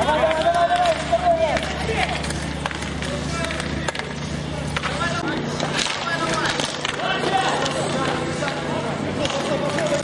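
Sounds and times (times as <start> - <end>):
hockey sticks and skates clicking: 0.0 - 10.0.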